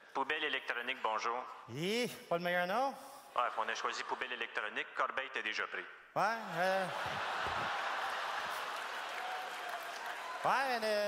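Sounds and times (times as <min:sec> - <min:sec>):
audience laughing: 0:06.4 - 0:09.6.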